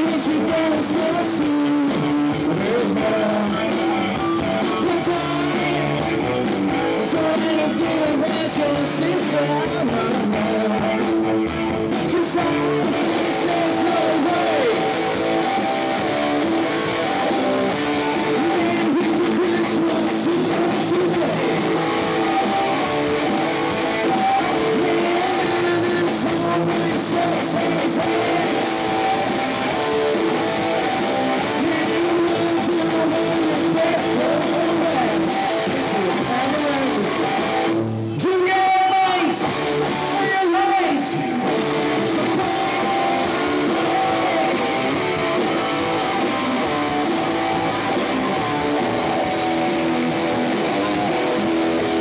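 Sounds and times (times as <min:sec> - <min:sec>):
distorted electric guitar chords: 0:00.0 - 0:52.0
live rock band playing: 0:00.0 - 0:52.0.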